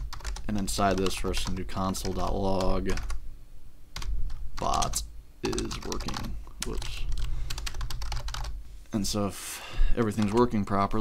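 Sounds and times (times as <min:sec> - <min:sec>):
typing on computer keyboard: 0:00.0 - 0:03.2, 0:04.0 - 0:08.6, 0:10.1 - 0:10.6
low steady hum: 0:00.0 - 0:11.0.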